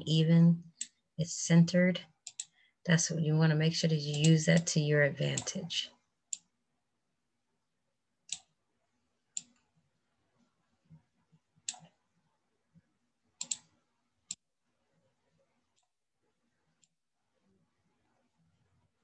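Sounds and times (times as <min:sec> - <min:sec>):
computer mouse clicking: 0:02.2 - 0:02.6, 0:08.3 - 0:08.6, 0:09.3 - 0:09.6, 0:11.6 - 0:12.0, 0:13.4 - 0:13.7.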